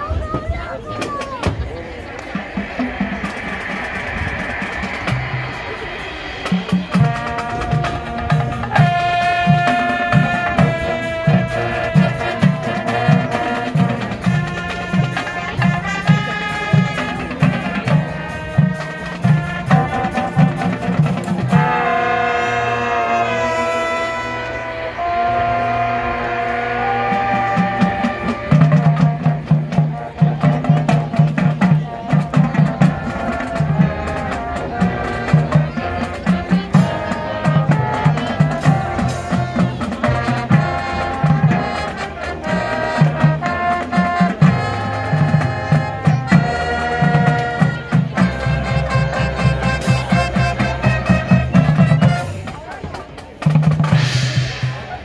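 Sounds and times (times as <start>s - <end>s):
marching band playing: 0.0s - 55.0s
brass chords: 1.4s - 52.8s.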